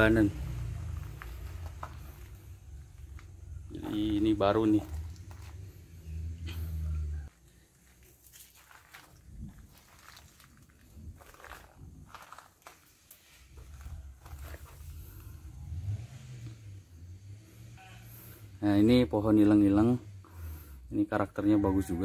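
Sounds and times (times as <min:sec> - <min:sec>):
faint rustles and crackles: 0:07.3 - 0:15.4.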